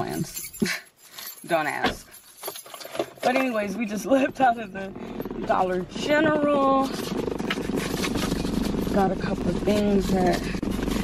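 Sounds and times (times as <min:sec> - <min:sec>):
road noise inside car: 0:03.6 - 0:11.0
car engine running: 0:03.7 - 0:11.0.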